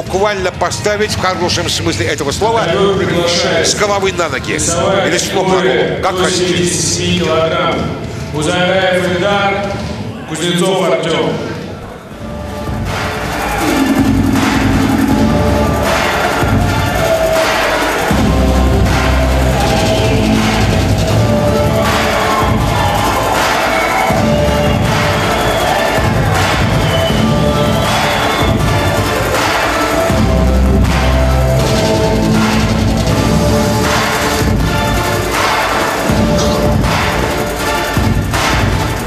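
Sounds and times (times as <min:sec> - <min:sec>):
background music with heavy bass: 0:12.1 - 0:39.0.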